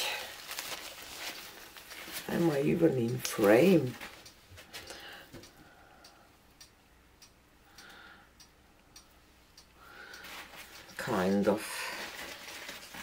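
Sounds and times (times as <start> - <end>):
paper towels rustling: 0.0 - 5.0, 10.2 - 13.0.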